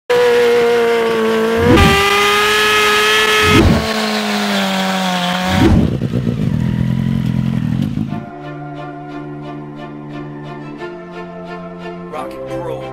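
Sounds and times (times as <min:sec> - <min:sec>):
motorcycle engine revving: 0:00.1 - 0:08.3.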